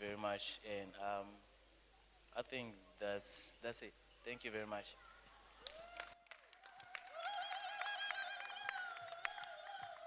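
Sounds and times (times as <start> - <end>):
hand claps: 5.6 - 10.0.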